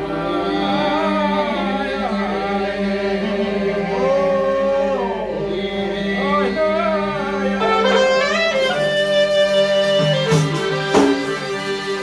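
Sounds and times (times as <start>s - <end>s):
folk singing over a drone: 0.0s - 9.4s.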